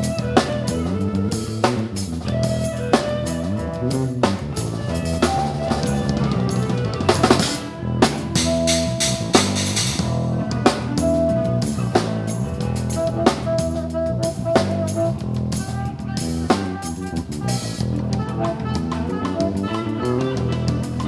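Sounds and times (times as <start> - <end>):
bass guitar: 0.0 - 21.0
electric guitar sustained notes: 0.0 - 21.0
rock band playing: 0.0 - 21.0.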